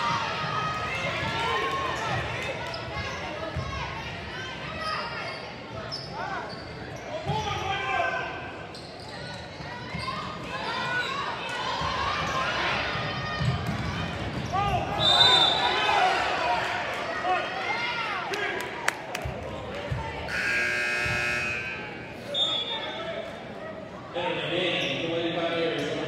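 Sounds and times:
spectators' voices in a hall: 0.0 - 26.0.

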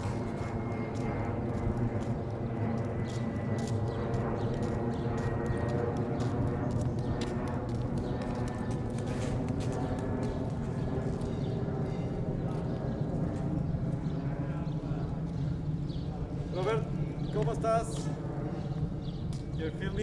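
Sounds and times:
footsteps on pavement: 0.0 - 16.4, 17.0 - 20.0.

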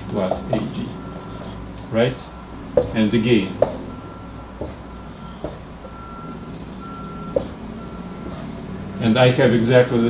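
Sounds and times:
marker tapping on whiteboard: 2.8 - 3.0, 3.6 - 3.8, 4.6 - 4.8, 5.4 - 5.7, 7.4 - 7.6.

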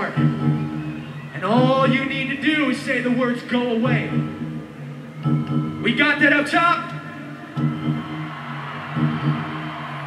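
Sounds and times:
rock band drone: 3.9 - 10.0.

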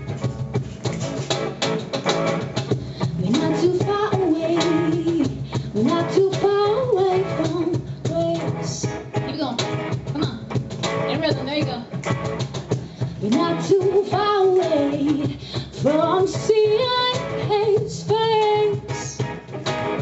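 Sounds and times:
beat tapped on cajon: 0.0 - 20.0
electric guitar chords: 0.0 - 20.0
woman singing: 3.0 - 11.9, 13.2 - 19.3.

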